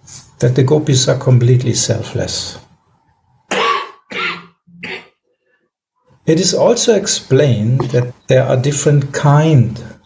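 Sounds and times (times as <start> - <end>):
person coughing: 3.5 - 5.2.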